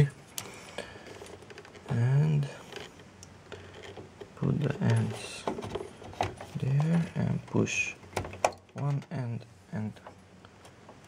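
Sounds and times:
faint clicks and handling noise: 0.2s - 11.0s.

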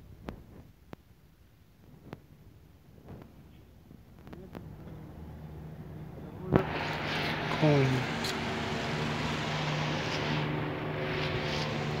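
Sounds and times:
fogging machine drone: 4.6s - 12.0s.

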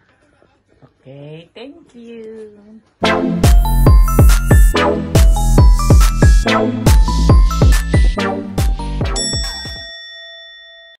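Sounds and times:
electronic music with bass drops: 3.0s - 9.6s
bright bell chime: 7.1s - 8.2s, 8.8s - 11.0s.

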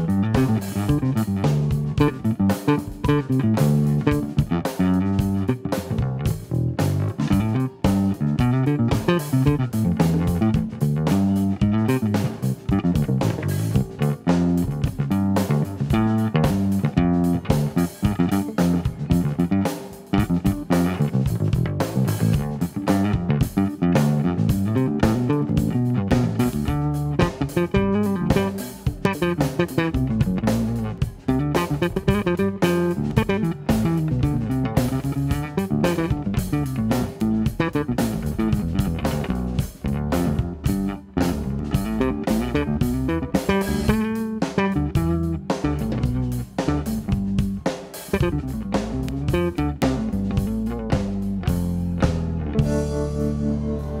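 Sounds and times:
drum beat: 0.0s - 52.9s
bass guitar: 0.0s - 54.0s
guitar: 0.0s - 54.0s.

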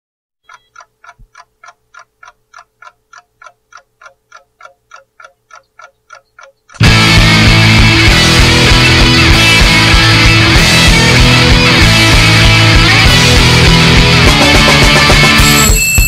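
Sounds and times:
clock ticking: 0.4s - 9.7s
rock band with electric guitars: 6.8s - 16.0s.

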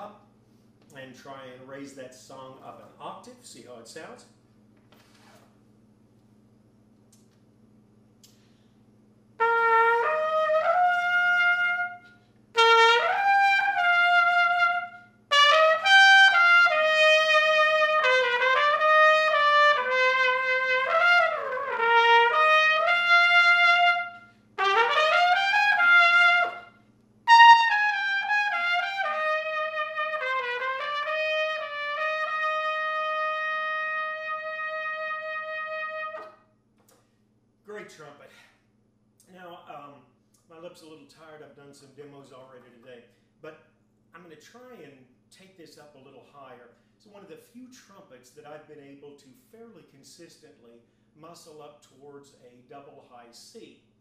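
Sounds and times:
trumpet playing slow melody: 9.4s - 36.4s.

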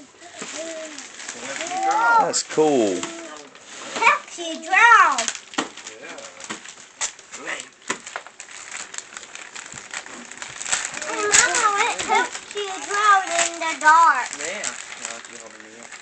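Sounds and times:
wrapping paper tearing and crinkling: 0.0s - 16.0s
child exclaiming: 0.4s - 2.4s, 3.0s - 5.3s, 11.0s - 14.2s.

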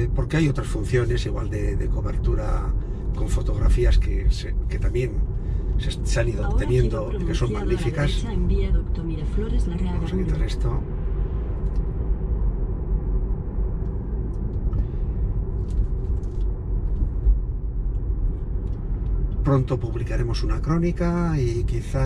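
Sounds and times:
man's voice: 0.0s - 5.2s, 5.8s - 8.4s, 10.0s - 10.8s, 19.5s - 22.0s
road and tyre rumble in car: 0.0s - 22.0s.

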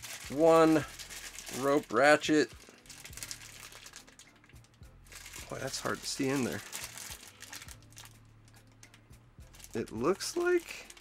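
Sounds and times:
plastic bag crinkling: 0.0s - 8.2s, 9.5s - 11.0s.

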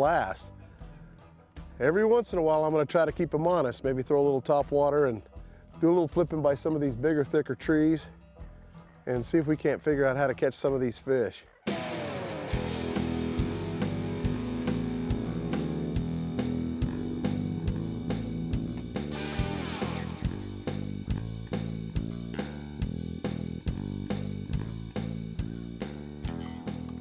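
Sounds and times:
guitar and bass music: 0.0s - 27.0s
steady drum beat: 12.6s - 27.0s.

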